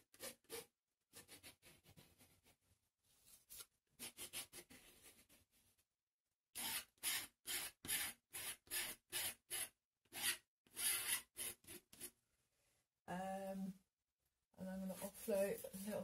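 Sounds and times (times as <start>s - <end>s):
palette knife scraping paint: 0.0s - 2.7s, 3.4s - 5.4s.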